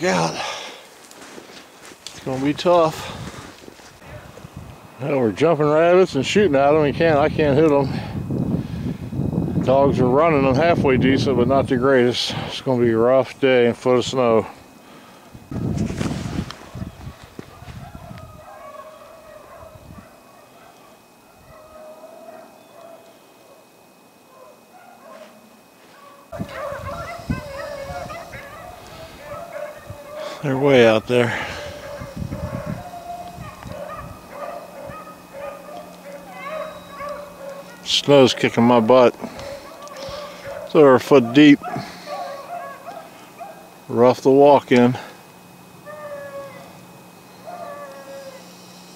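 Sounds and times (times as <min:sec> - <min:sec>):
distant hounds baying: 0:03.9 - 0:08.1, 0:14.2 - 0:44.2, 0:44.9 - 0:48.9
microphone bumps: 0:15.4 - 0:18.2.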